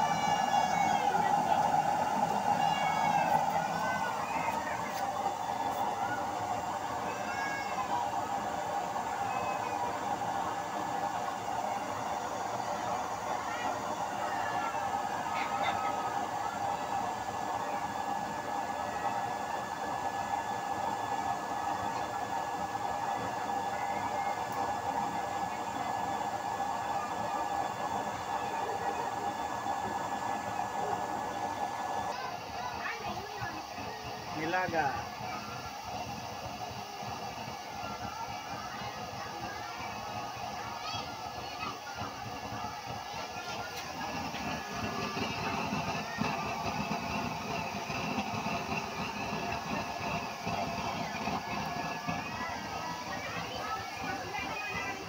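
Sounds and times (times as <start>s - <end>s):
electric blower fan humming: 0.0s - 55.0s.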